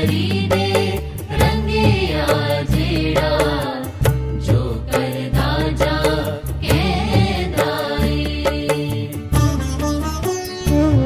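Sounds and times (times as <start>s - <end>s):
bass notes: 0.0s - 11.0s
instrumental accompaniment: 0.0s - 11.0s
percussive beat: 0.0s - 11.0s.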